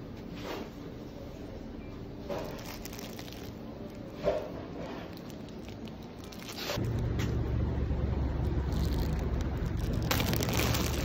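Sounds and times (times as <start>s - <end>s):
street noise rumble: 2.2s - 11.0s
plastic bag crinkling: 2.3s - 7.0s, 8.4s - 11.0s.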